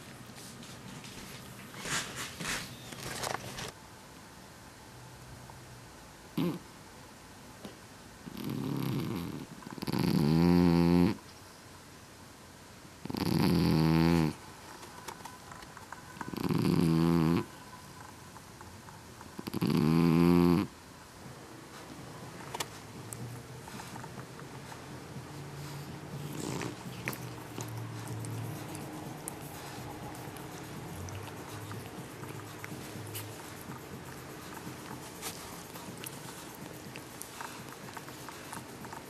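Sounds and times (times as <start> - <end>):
cat snoring: 6.4 - 6.6, 8.3 - 11.2, 13.0 - 14.4, 16.3 - 17.5, 19.4 - 20.7, 25.6 - 27.7
cat purring: 8.2 - 11.2, 13.0 - 14.4, 16.2 - 17.6, 19.3 - 20.7, 22.5 - 39.0.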